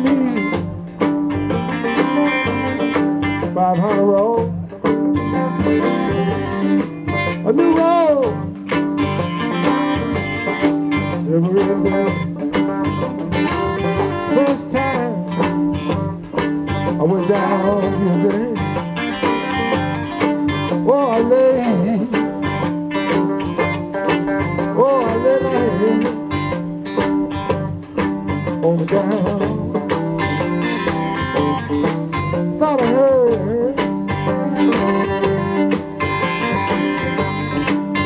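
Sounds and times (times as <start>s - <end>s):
banjo: 0.0s - 38.0s
electric guitar: 0.0s - 38.0s
fiddle with sliding notes: 0.0s - 38.0s.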